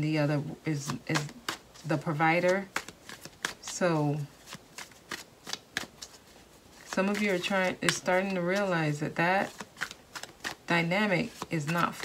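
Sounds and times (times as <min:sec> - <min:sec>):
cards being shuffled: 0:00.7 - 0:12.0.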